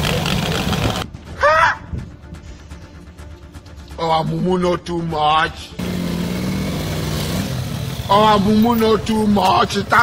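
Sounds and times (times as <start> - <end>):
motorcycle engine running: 0.0 - 1.0, 5.8 - 10.0.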